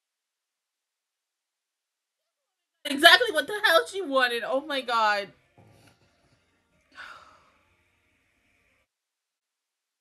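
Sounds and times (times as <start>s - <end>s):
woman sighing: 7.0s - 7.5s.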